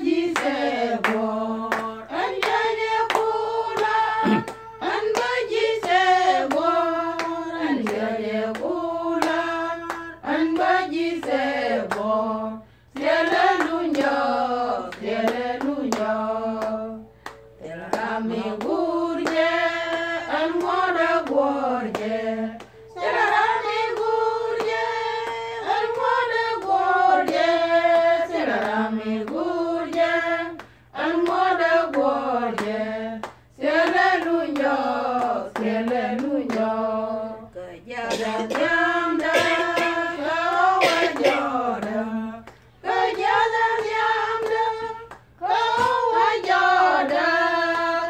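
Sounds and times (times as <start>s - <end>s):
women singing sustained notes: 0.0s - 48.0s
sharp hand claps: 0.4s - 12.1s, 15.0s - 36.7s.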